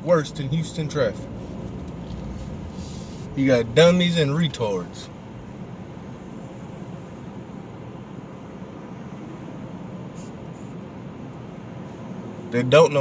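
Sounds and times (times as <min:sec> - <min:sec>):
car cabin rumble and hiss: 0:00.0 - 0:13.0.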